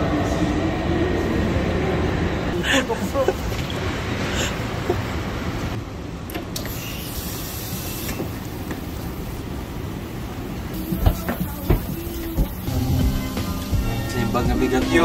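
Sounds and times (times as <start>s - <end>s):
train low rumble: 0.0s - 6.2s, 8.9s - 15.0s.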